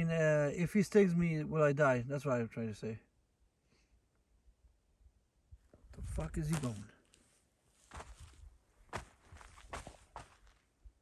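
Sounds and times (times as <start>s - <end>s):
footsteps on dry ground: 6.0s - 10.8s.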